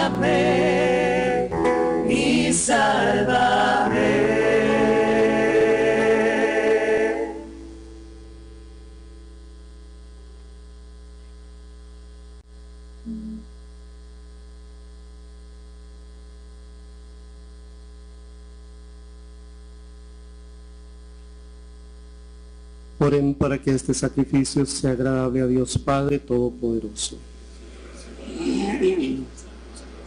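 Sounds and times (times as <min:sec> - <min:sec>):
choir singing: 0:00.0 - 0:07.8
electrical mains hum: 0:00.0 - 0:30.0
short low sound: 0:13.0 - 0:13.5.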